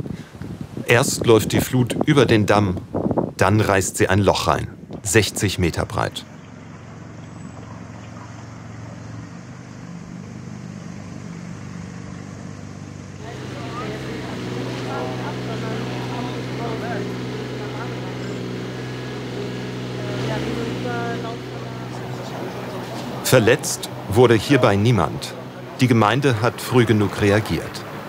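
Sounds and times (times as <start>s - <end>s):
engine running: 5.3s - 28.0s
faint voices or chirps: 13.2s - 20.8s.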